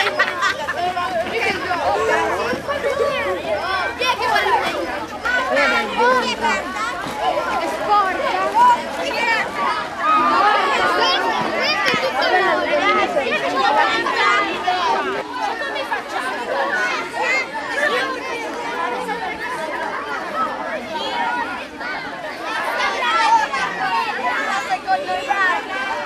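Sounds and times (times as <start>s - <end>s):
children chattering: 0.0s - 26.0s.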